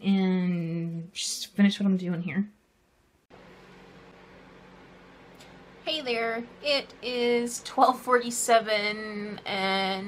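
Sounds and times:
low hum: 3.1s - 10.0s.

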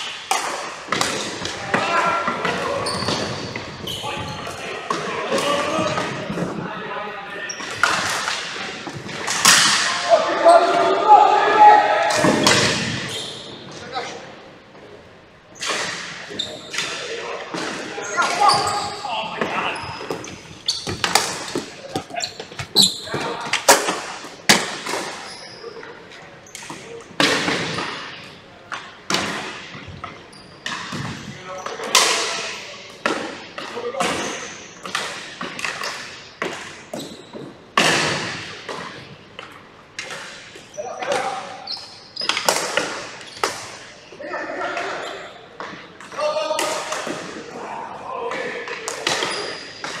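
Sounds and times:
hockey sticks clacking on ball: 0.0s - 4.0s, 7.6s - 9.9s, 15.6s - 25.5s, 26.1s - 43.9s, 45.6s - 47.4s, 48.3s - 50.0s
players shouting: 9.7s - 12.8s.

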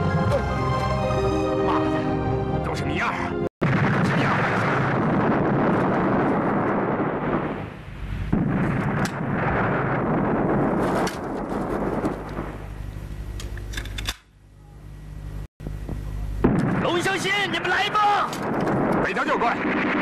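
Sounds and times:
steady low hum: 3.6s - 20.0s
machine-gun fire: 16.4s - 20.0s.

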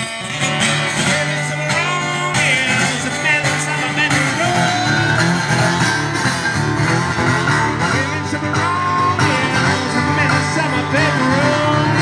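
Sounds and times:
acoustic guitar strumming: 0.0s - 12.0s
man singing: 0.7s - 5.9s, 7.1s - 12.0s.

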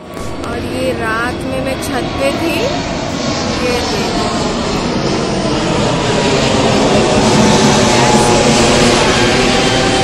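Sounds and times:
aircraft engine roar: 0.0s - 10.0s.

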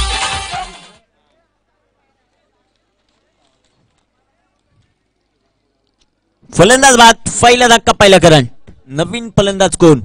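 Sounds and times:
faint distant voices: 0.9s - 6.6s.

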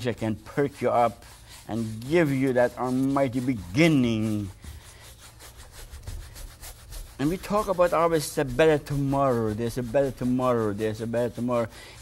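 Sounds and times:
bristle brush scrubbing canvas: 0.0s - 12.0s.

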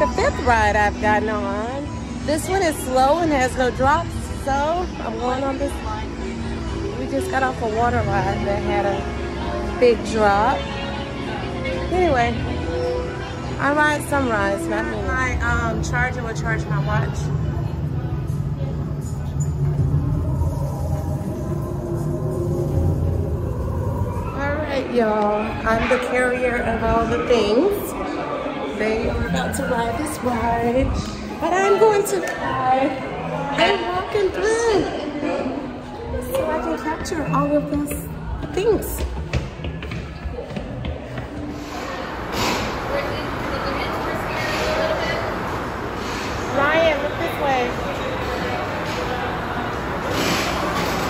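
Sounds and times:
crowd chatter indoors: 0.0s - 51.0s.

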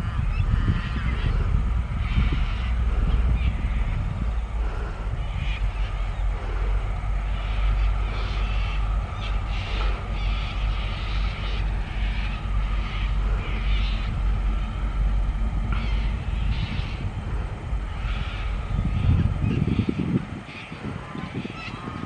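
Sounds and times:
diesel locomotive engine drone: 0.0s - 22.0s
irregular higher train sounds: 0.0s - 22.0s.

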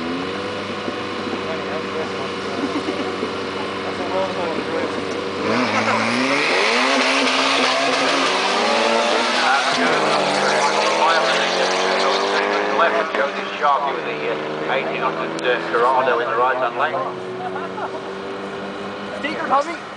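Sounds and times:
car engine revving: 0.0s - 19.9s.

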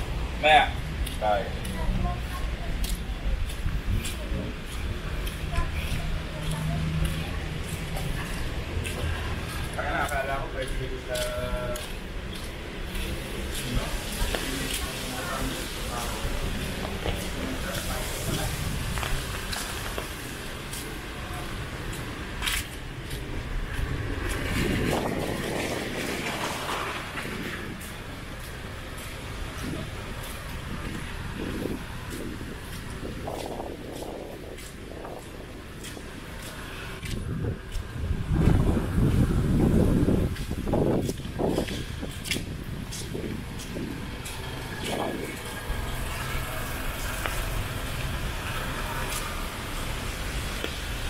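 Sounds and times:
trees rustling: 0.0s - 51.0s
wind gusts on microphone: 0.0s - 51.0s.

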